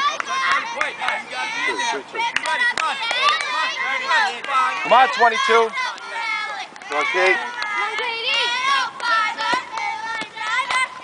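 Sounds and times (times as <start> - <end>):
girls calling and chattering: 0.0 - 11.0.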